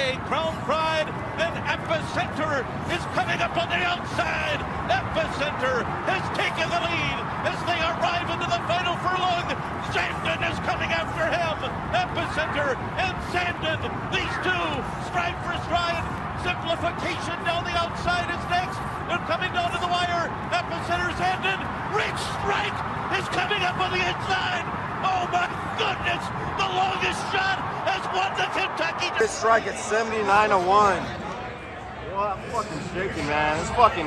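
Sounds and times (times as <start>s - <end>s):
horse race commentary: 0.0s - 34.0s
excited voices shouting: 20.8s - 29.8s.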